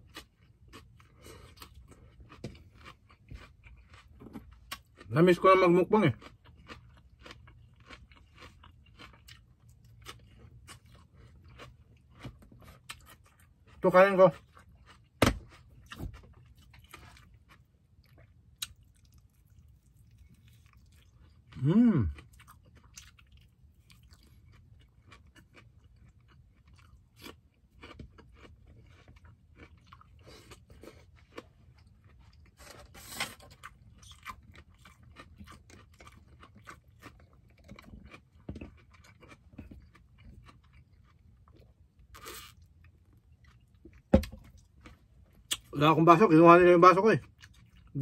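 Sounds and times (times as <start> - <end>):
person chewing wetly: 0.0 - 5.1, 6.0 - 45.8, 47.2 - 48.0
bites and crunches: 0.0 - 45.8
thump: 15.2 - 15.4.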